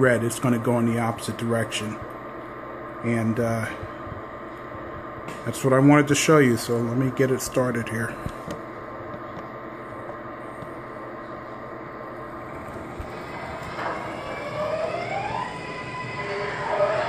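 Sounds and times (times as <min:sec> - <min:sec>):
steady hum: 0:00.0 - 0:17.0
electric motor whine rising: 0:12.3 - 0:17.0.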